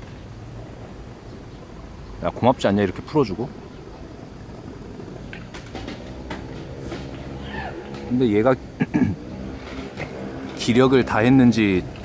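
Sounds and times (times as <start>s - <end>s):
motor vehicle engine rumbling: 0.0s - 12.0s.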